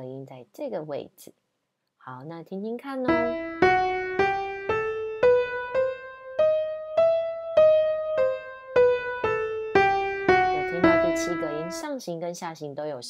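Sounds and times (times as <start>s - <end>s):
piano playing a scale: 3.1s - 11.9s.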